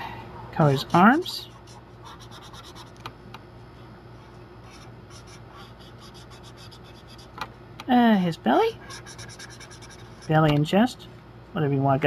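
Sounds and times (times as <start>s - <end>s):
steady low hum: 0.0s - 12.0s
marker scratching on paper: 0.7s - 3.0s, 4.6s - 7.4s, 8.9s - 10.4s.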